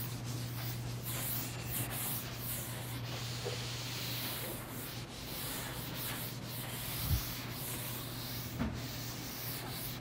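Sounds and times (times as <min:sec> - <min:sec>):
eraser rubbing on chalkboard: 0:00.0 - 0:10.0
low room hum: 0:00.0 - 0:10.0.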